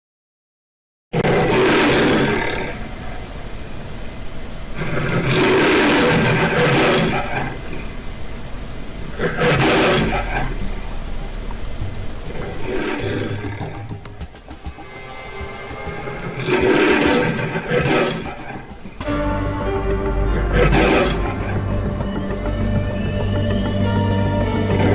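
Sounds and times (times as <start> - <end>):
lion roaring: 1.2 - 2.9, 4.8 - 7.9, 9.0 - 10.9, 12.3 - 14.0, 16.2 - 18.7, 20.2 - 23.3
music: 10.4 - 24.9.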